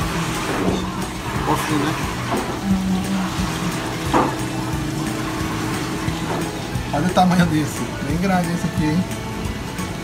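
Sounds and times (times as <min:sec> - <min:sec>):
water rushing through aquarium pumps: 0:00.0 - 0:10.0.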